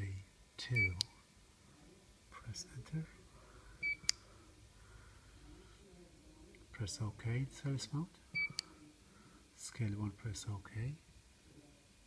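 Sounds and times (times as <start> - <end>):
keypad beep: 3.8 - 4.2, 8.4 - 8.6.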